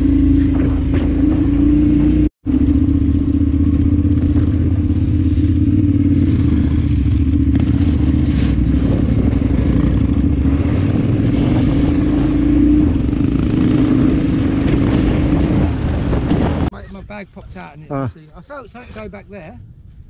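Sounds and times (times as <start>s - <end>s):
motorcycle engine running: 0.0s - 16.7s.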